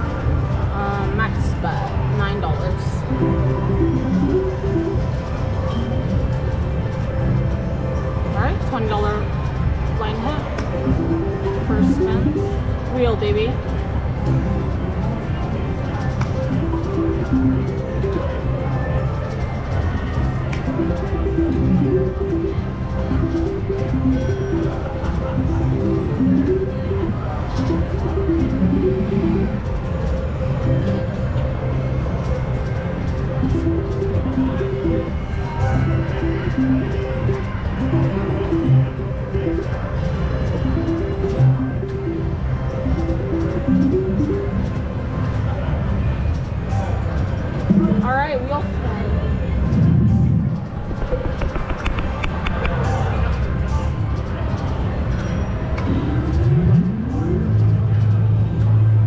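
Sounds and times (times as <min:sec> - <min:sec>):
casino background noise: 0:00.0 - 0:59.0.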